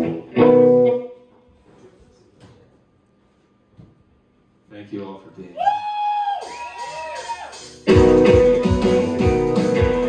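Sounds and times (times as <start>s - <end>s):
electric guitar strumming: 0.0s - 1.2s, 7.8s - 10.0s
audience member whooping: 5.6s - 7.7s.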